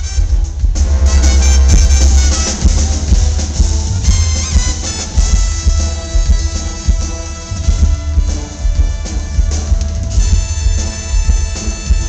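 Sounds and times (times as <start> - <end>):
heavy bass line: 0.0 - 8.2
brass band playing: 0.0 - 12.0
drum kit: 0.0 - 12.0.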